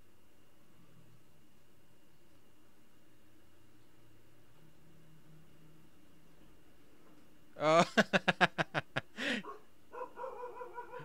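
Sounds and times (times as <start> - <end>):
man laughing: 7.6 - 9.4.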